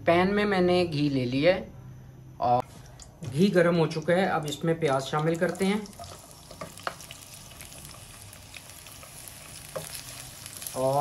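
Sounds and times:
onions sizzling in a pan: 5.3 - 11.0.

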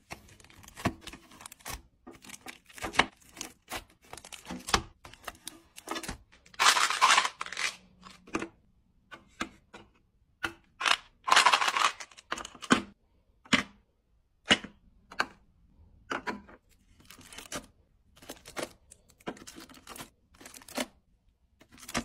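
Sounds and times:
packaging rustling: 0.0 - 8.2, 10.8 - 12.3.

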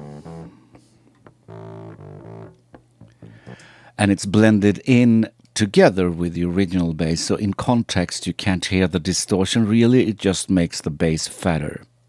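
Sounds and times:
distorted bass guitar notes: 0.0 - 3.8.

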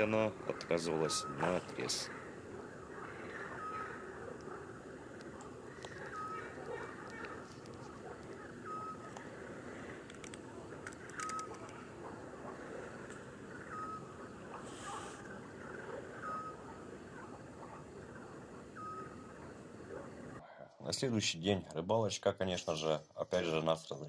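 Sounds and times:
low background hiss: 0.0 - 24.0.

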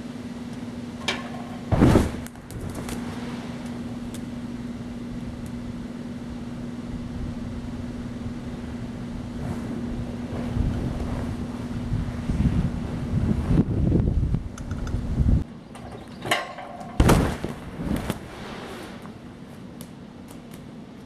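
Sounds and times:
low mechanical hum: 0.0 - 21.0
wind rumbling on microphone: 7.0 - 15.5.

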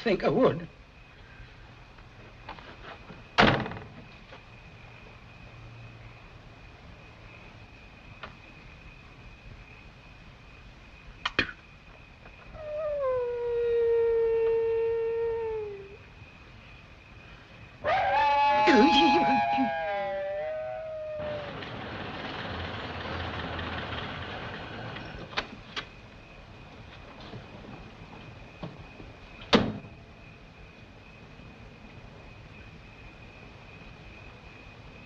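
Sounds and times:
dog howling: 12.5 - 16.0, 17.8 - 21.7
car door thunking shut: 29.5 - 29.9.

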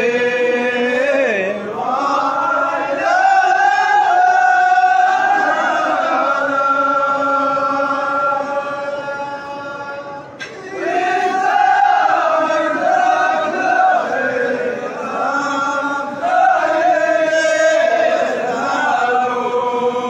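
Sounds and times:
men chanting together: 0.0 - 9.7, 10.5 - 20.0.

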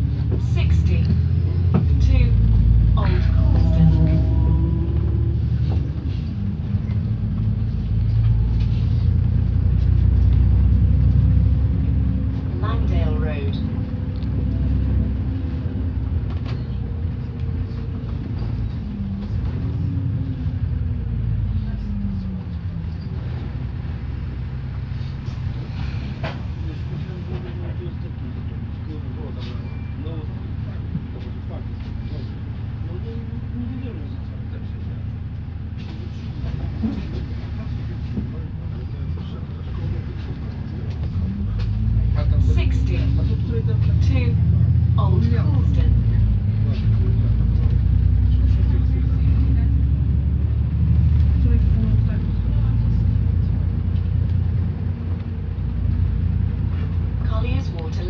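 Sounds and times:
bus engine and road rumble: 0.0 - 58.0.

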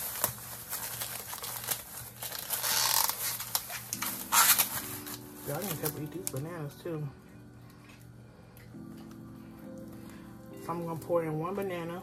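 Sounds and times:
plastic bag crinkling: 0.0 - 6.9.

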